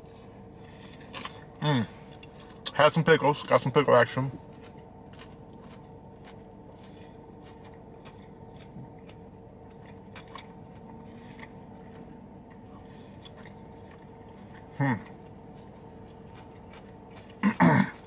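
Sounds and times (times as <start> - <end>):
person chewing food: 0.0 - 2.7, 4.3 - 18.0
low hum in car cabin: 0.0 - 18.0.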